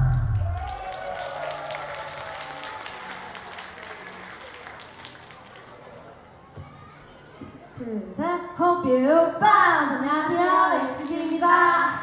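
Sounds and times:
small audience clapping: 0.0 - 6.3, 10.6 - 12.0.

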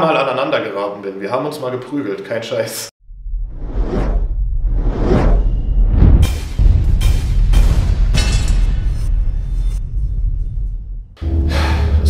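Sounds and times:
deep bass rumble: 3.0 - 12.0.

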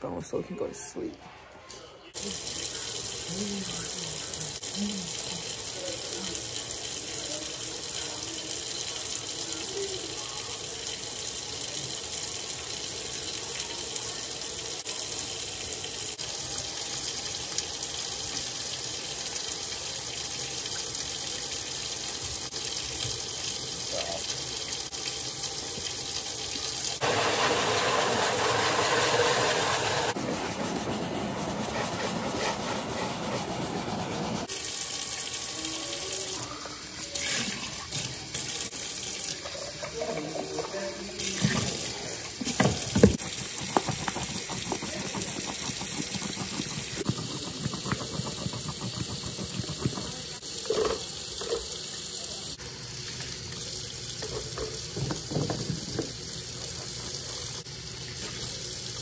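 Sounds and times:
faucet running into steel sink: 2.2 - 30.2, 34.4 - 59.0
water pouring into soapy tub: 2.2 - 53.8.

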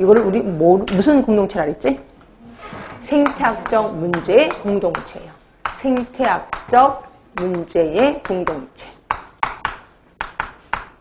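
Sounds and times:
chalk tapping on chalkboard: 3.1 - 11.0.

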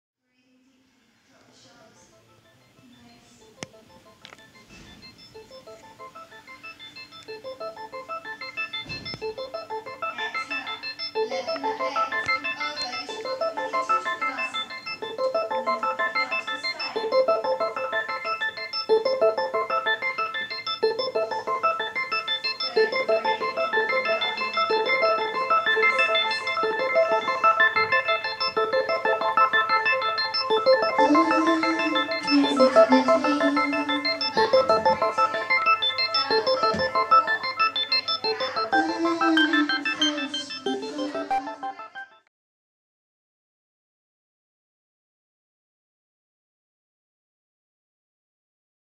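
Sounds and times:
electronic organ chords with tremolo: 3.7 - 42.2.

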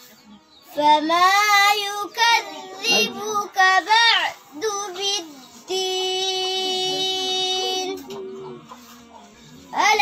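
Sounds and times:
girl chanting recitation: 0.7 - 8.1, 9.7 - 10.0.

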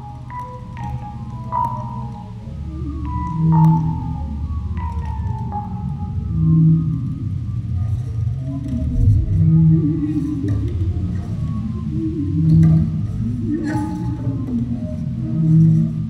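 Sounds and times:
sliding higher tones: 1.9 - 16.0
double bass low notes: 2.2 - 16.0.

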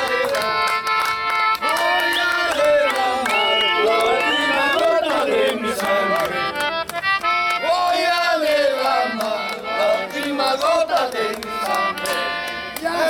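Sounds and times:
men singing: 0.0 - 1.0, 1.6 - 6.6, 7.5 - 13.0
button accordion playing folk song: 0.0 - 13.0
hands clapping: 0.0 - 13.0.

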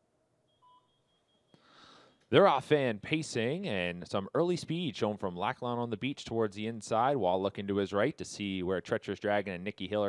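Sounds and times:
faint high steady tone: 0.0 - 4.3
faint beep: 0.4 - 1.6.

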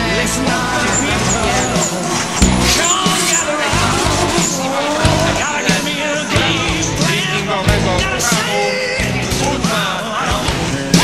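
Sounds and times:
car engine running hard: 0.0 - 11.0
rock music: 0.0 - 11.0
tyres squealing: 0.0 - 11.0.

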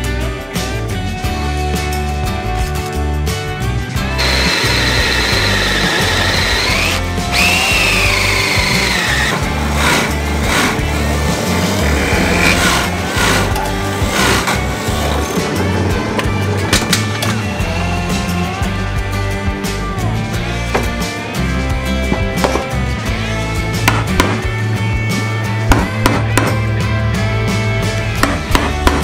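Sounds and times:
background music: 0.0 - 29.0
electric drill whining: 4.1 - 11.1, 11.7 - 15.2.

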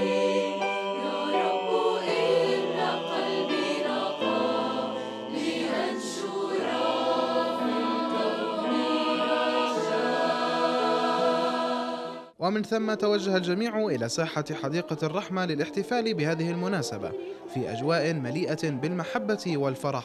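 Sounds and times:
mixed choir singing in harmony: 0.0 - 12.4, 13.2 - 17.6.

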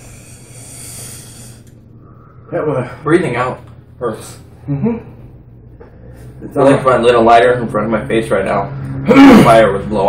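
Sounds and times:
man exhaling hissing breath: 0.0 - 1.8.

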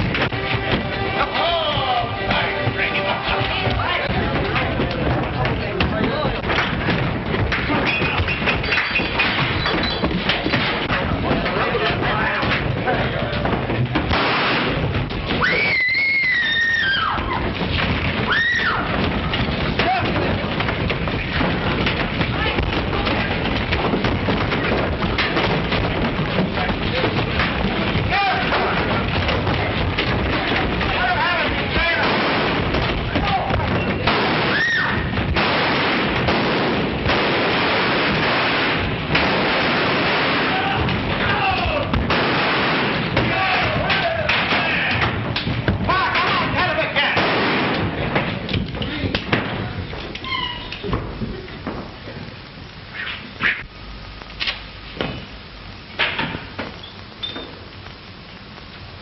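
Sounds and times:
thuds of blows: 0.0 - 50.2
steady rushing noise: 16.8 - 50.0
crashes: 17.6 - 45.2.

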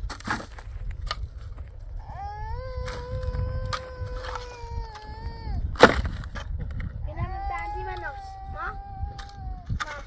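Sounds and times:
shovel scraping: 0.0 - 1.3
shovel striking stony ground: 0.0 - 1.3, 5.8 - 6.6
wailing cry: 2.0 - 5.7, 7.1 - 9.7.

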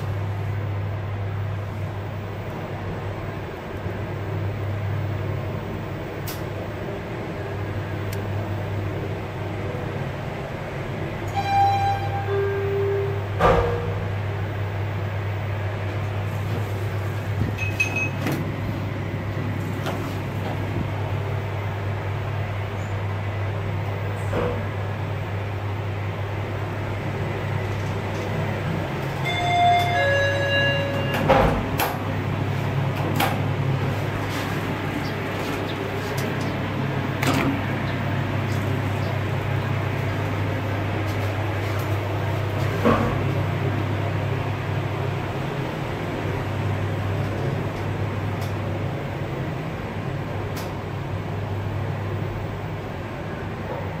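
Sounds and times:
elevator humming: 0.0 - 54.0
elevator door clunk: 11.1 - 14.4, 16.4 - 21.1, 27.6 - 43.5
electronic chime: 29.3 - 31.2.

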